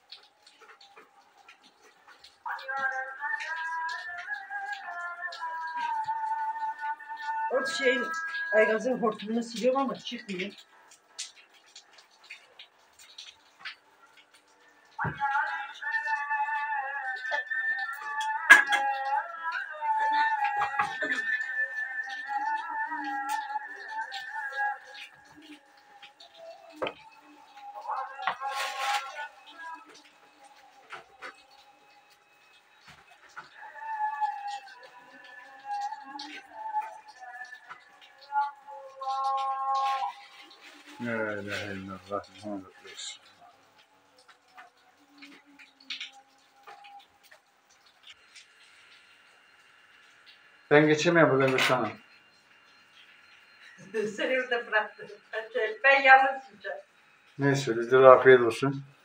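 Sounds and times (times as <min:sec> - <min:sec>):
call to prayer over a loudspeaker: 0:02.4 - 0:10.8, 0:14.9 - 0:32.2, 0:32.9 - 0:43.7, 0:50.7 - 0:52.1, 0:53.8 - 0:56.8, 0:57.4 - 0:58.9.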